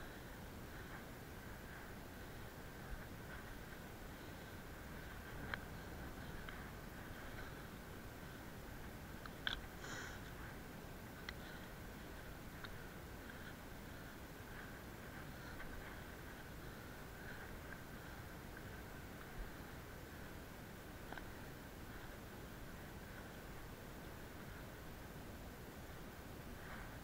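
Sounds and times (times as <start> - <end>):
faint steady hiss: 0.0 - 27.0
footsteps on grassy rocky slope: 0.1 - 24.9.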